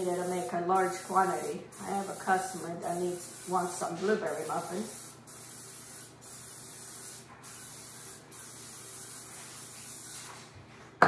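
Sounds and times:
aerosol spray hissing: 0:00.0 - 0:10.4.

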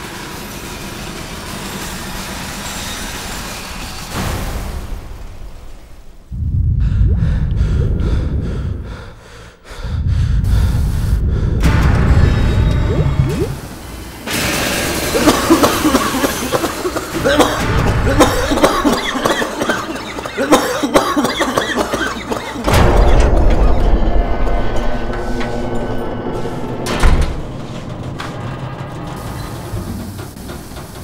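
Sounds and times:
man coughing: 0:15.1 - 0:22.7.

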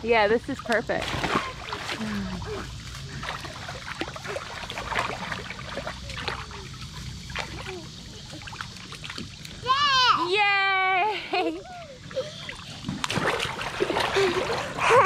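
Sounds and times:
shallow water splashing: 0:00.6 - 0:09.8, 0:12.1 - 0:15.0.

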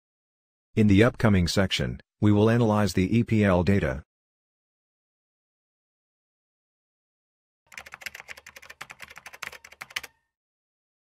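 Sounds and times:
keyboard typing: 0:07.7 - 0:10.3.

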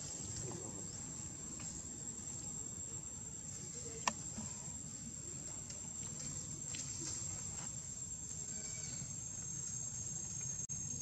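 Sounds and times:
high-pitched insect drone: 0:06.2 - 0:11.0.

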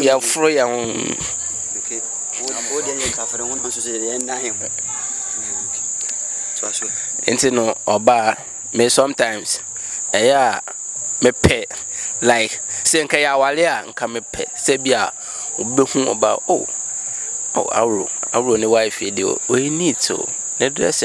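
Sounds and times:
man talking: 0:00.0 - 0:05.9, 0:06.5 - 0:16.7, 0:17.5 - 0:21.0
crickets chirping: 0:00.0 - 0:21.0.

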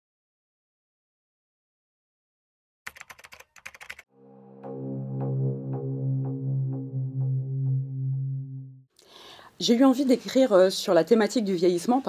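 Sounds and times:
computer keyboard typing clicks: 0:02.9 - 0:04.0.

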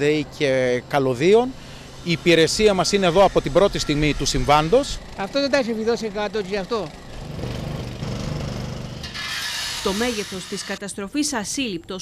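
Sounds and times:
power tool motor humming: 0:01.8 - 0:10.8.

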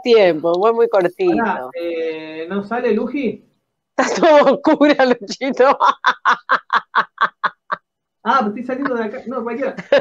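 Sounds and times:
woman laughing: 0:04.0 - 0:07.8.

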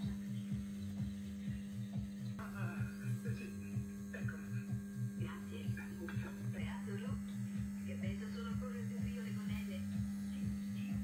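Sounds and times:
low regular beat: 0:00.0 - 0:11.0
mains hum: 0:00.0 - 0:11.0.

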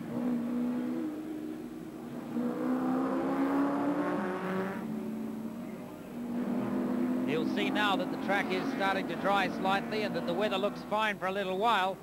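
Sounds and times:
racing car engine passing: 0:00.0 - 0:11.0.

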